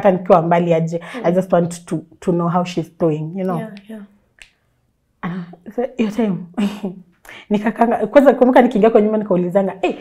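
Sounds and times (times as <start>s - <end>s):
woman speaking: 0.0s - 4.1s, 5.3s - 10.0s.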